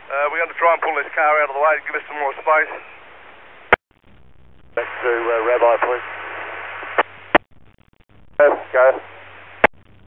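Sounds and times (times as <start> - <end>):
radio scanner hiss: 0.1 - 7.5, 8.4 - 9.7.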